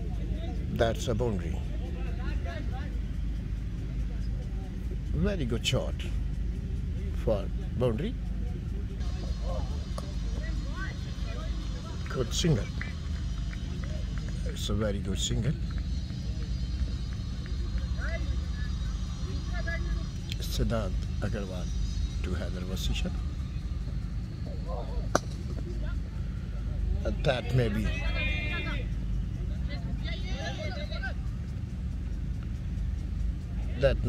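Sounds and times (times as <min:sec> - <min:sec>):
faint distant voices: 0:00.0 - 0:34.0
low steady rumble: 0:00.0 - 0:34.0
cricket bat striking ball: 0:25.1 - 0:25.4.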